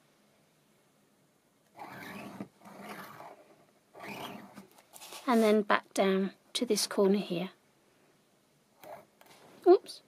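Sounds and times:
stylus scratching along cardstock: 0:01.8 - 0:03.4, 0:04.0 - 0:05.5, 0:08.8 - 0:09.1.

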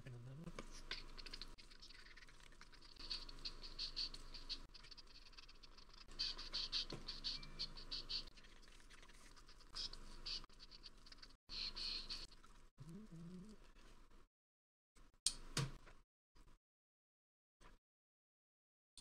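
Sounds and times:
faint rhythmic scratching: 0:00.0 - 0:14.2.

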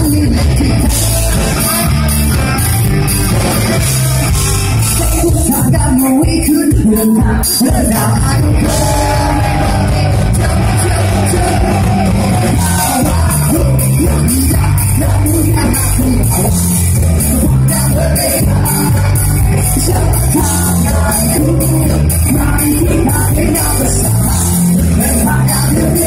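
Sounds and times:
loud live rock band: 0:00.0 - 0:26.0.

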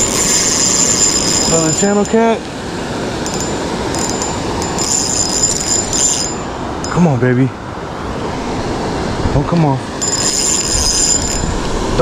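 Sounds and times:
fishing reel whirring: 0:00.0 - 0:02.1, 0:03.2 - 0:07.0, 0:10.0 - 0:11.5.

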